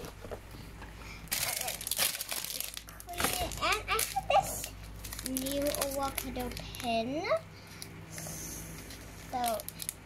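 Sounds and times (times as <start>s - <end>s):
plastic packaging crinkling: 1.3s - 7.2s, 8.9s - 10.0s.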